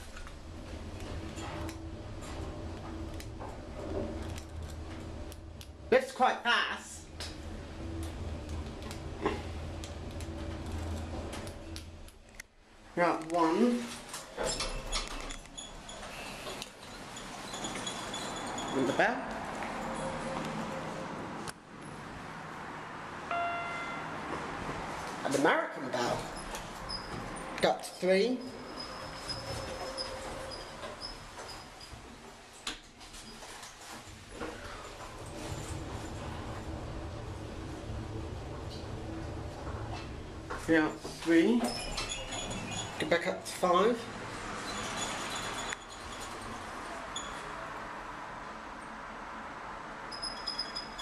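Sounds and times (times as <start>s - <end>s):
lift car humming: 0.0s - 6.0s, 7.0s - 12.4s, 34.4s - 43.0s
faint high whine: 23.3s - 24.2s.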